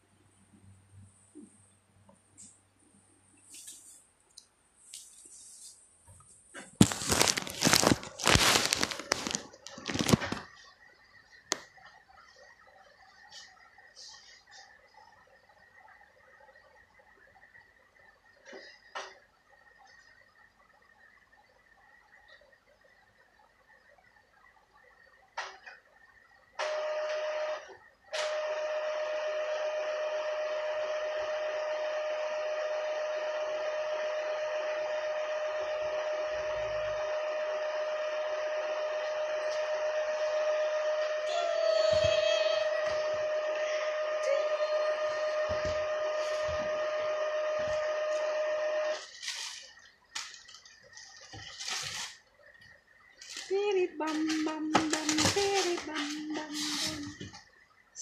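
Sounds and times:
steady machine tone: 0:26.0 - 0:50.1
machine whirring: 0:26.6 - 0:52.3.

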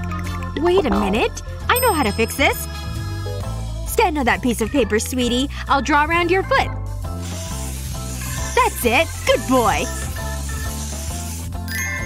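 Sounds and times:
background music with bass line: 0:00.0 - 0:12.0
marker hissing on paper: 0:06.9 - 0:12.0.

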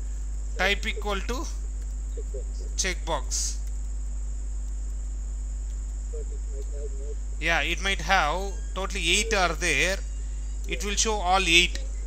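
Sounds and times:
thin high-pitched whine: 0:00.0 - 0:04.0, 0:04.8 - 0:12.0
low electrical hum: 0:00.0 - 0:12.0
faint distant voice murmuring: 0:06.1 - 0:12.0.

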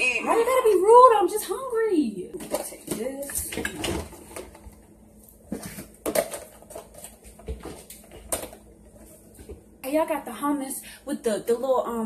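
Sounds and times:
containers knocking and rustling: 0:02.3 - 0:09.7.

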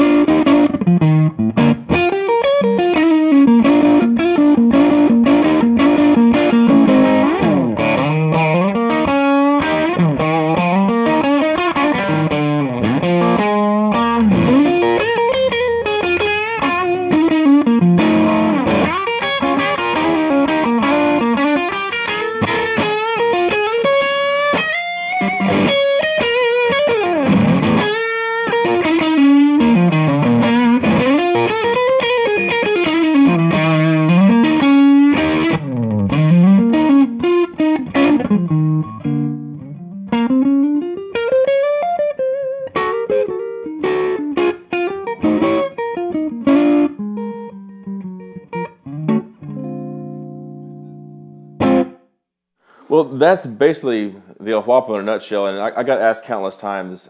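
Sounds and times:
distorted electric guitar: 0:00.0 - 0:52.0.

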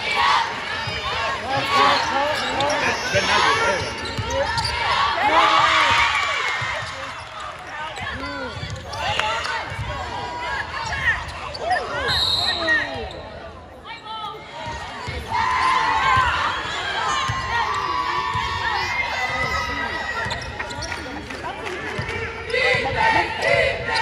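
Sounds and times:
players and spectators shouting: 0:00.0 - 0:13.1, 0:13.9 - 0:20.9, 0:21.6 - 0:24.0
referee's whistle: 0:11.6 - 0:13.4.

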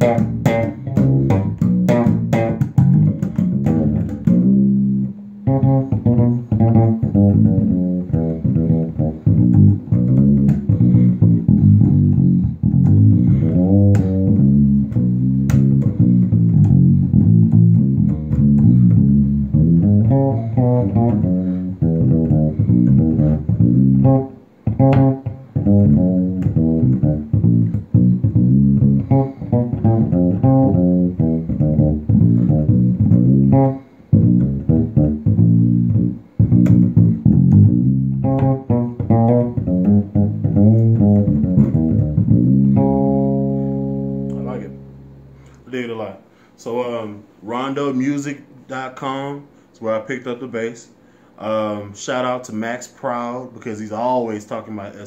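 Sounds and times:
fretless electric bass groove: 0:00.0 - 0:45.7.

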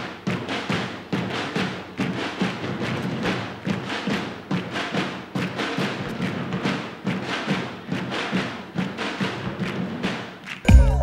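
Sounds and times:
drums beaten with sticks: 0:00.0 - 0:11.0.

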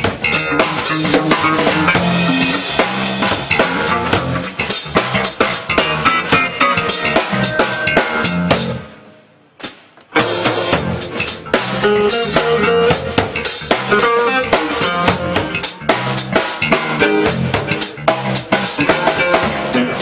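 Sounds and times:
funk band playing a groove: 0:00.0 - 0:20.0.

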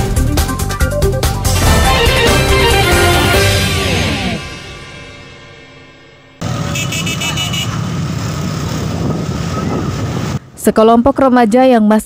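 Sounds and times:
motor scooter engines rumbling: 0:06.4 - 0:12.0.

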